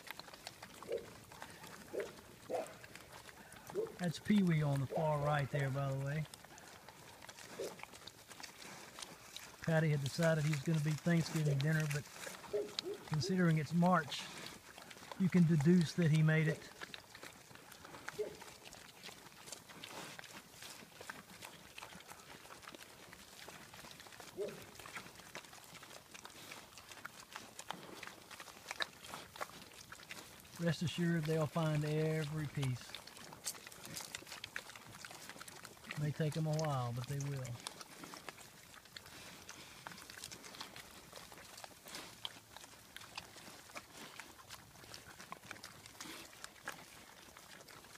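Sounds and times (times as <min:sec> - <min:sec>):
pig grunting: 0:00.0 - 0:47.9
pigs crunching and snuffling feed: 0:00.0 - 0:47.9.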